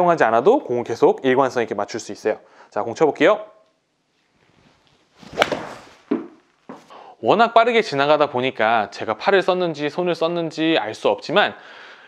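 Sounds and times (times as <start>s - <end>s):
golf club swish: 4.5s - 6.9s
sharp crack of ball impact: 5.2s - 6.4s.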